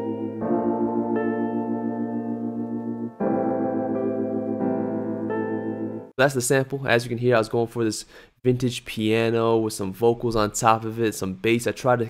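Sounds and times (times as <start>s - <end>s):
soul music piano chords: 0.0s - 6.2s.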